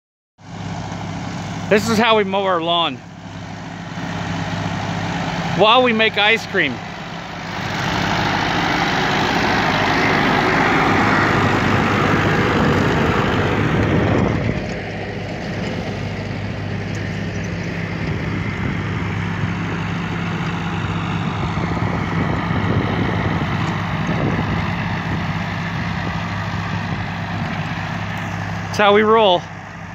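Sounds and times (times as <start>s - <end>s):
tractor engine running: 0.4s - 29.9s.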